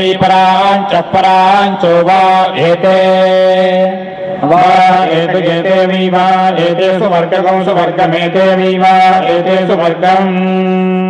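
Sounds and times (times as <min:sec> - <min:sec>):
chanted recitation: 0:00.0 - 0:11.0.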